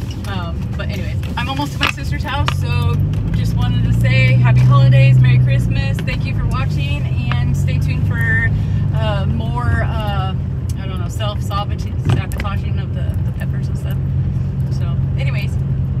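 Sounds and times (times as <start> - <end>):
woman speaking: 0.0 - 14.0, 14.7 - 15.6
car cabin engine and road hum: 0.0 - 16.0.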